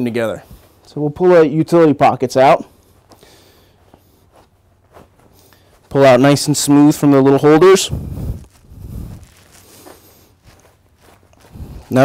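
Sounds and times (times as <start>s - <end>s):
fabric rustling: 3.7s - 6.0s, 7.9s - 12.0s.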